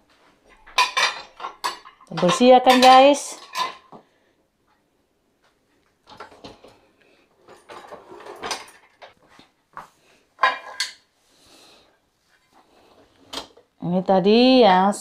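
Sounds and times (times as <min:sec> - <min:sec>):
dishes and cutlery clinking: 0:00.5 - 0:03.9, 0:07.4 - 0:09.2, 0:10.4 - 0:11.1
dishwasher racks rattling: 0:00.7 - 0:03.9.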